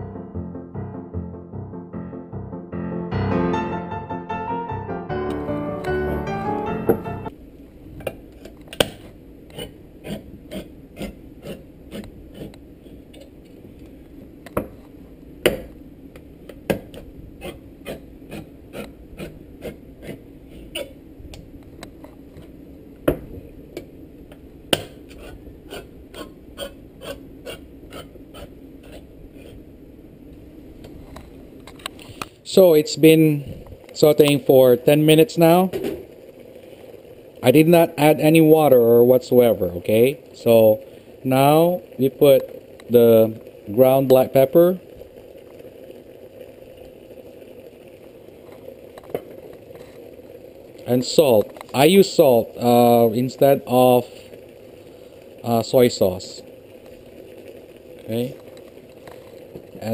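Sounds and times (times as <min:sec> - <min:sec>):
piano music: 0:00.0 - 0:07.3.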